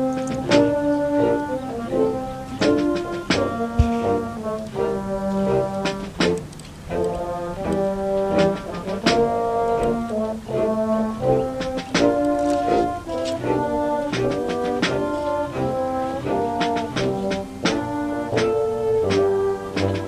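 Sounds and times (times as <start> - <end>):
concert band playing chords: 0.0 - 20.0.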